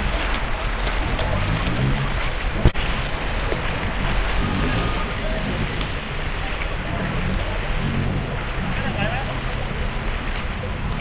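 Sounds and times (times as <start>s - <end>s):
faint voices: 0.0s - 11.0s
floodwater sloshing: 0.0s - 11.0s
rain: 0.0s - 11.0s.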